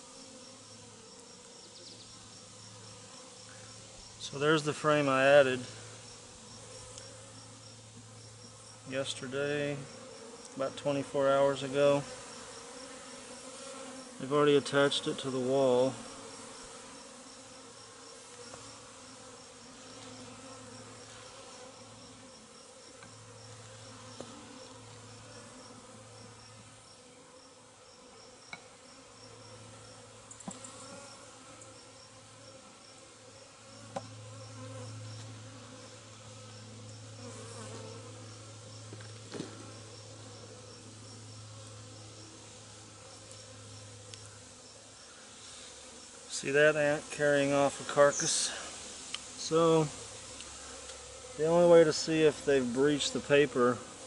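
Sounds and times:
bees buzzing: 0:00.0 - 0:54.0.

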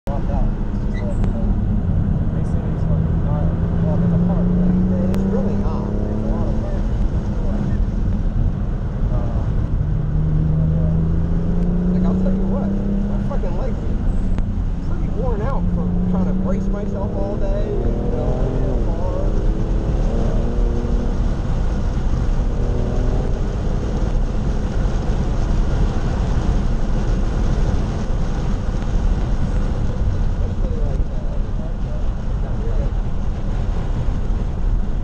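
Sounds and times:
road and tyre rumble: 0:00.0 - 0:35.0
car engine revving: 0:00.1 - 0:35.0.

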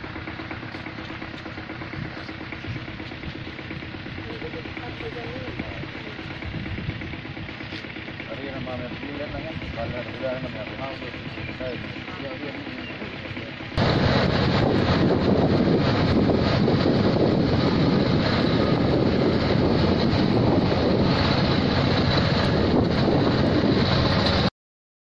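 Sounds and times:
vehicle and road noise: 0:00.0 - 0:24.5
wind buffeting microphone: 0:01.3 - 0:12.1, 0:13.2 - 0:24.5.

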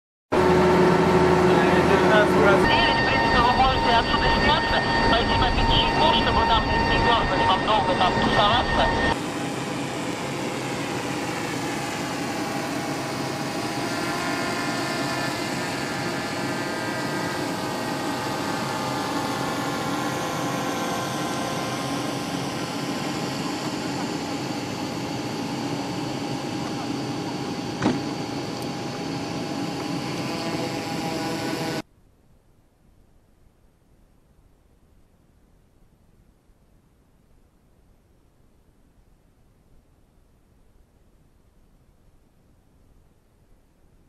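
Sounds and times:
jet turbine engine whining: 0:00.3 - 0:31.8.

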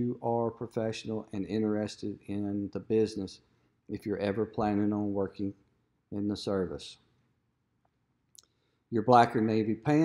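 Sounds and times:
man's voice: 0:00.0 - 0:05.6, 0:06.2 - 0:07.0, 0:09.0 - 0:10.0.

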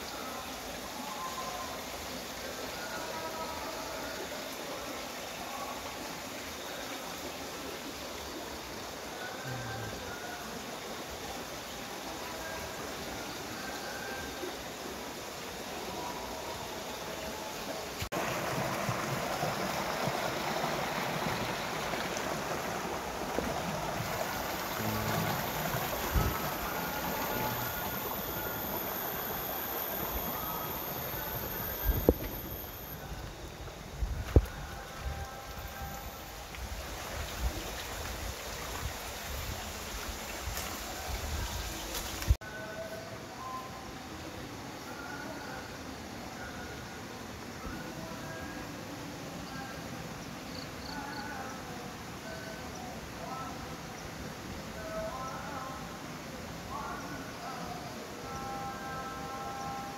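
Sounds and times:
water rushing from pipes: 0:18.1 - 0:33.0
short high tones: 0:24.1 - 0:33.0.

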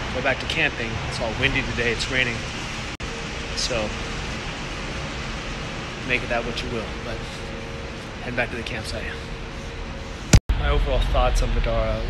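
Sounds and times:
faint constant hum: 0:00.0 - 0:12.0
steady rushing background noise: 0:00.0 - 0:12.0.

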